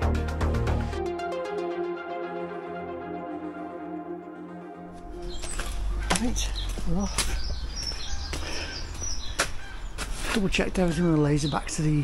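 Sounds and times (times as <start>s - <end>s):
background music: 0.0s - 7.2s.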